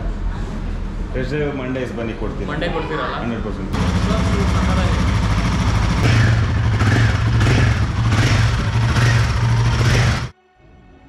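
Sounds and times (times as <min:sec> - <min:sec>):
motorcycle engine running: 0:03.8 - 0:10.3.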